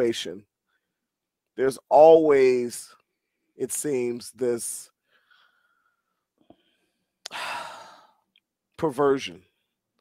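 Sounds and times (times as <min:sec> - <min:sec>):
man breathing into microphone: 0:05.0 - 0:08.2.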